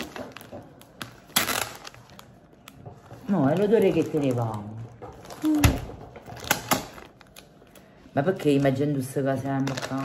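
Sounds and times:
plastic packet being handled: 0.0 - 10.0.

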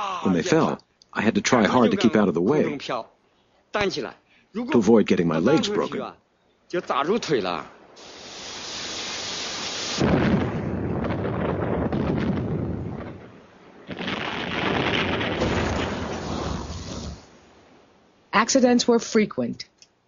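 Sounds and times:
rumble of falling rock: 10.0 - 17.3
rock blast: 14.0 - 17.3.

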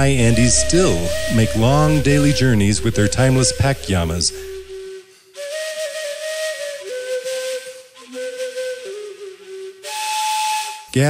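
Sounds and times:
breathy flute playing: 0.0 - 11.0.

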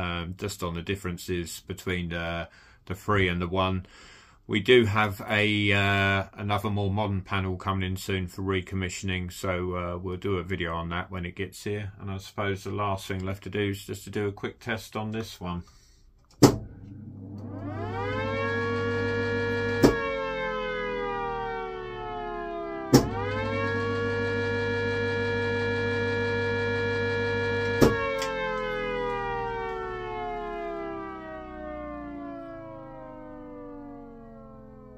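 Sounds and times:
low electrical hum: 16.3 - 30.7
air raid siren howling: 16.5 - 34.9.

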